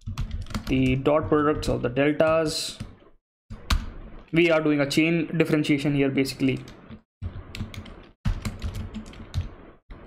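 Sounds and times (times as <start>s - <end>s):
typing on computer keyboard: 0.0s - 2.4s, 7.4s - 9.6s.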